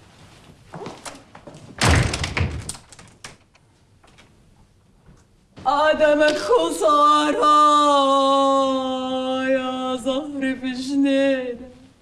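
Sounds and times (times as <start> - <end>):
door slamming with loud thud: 1.8 - 2.8.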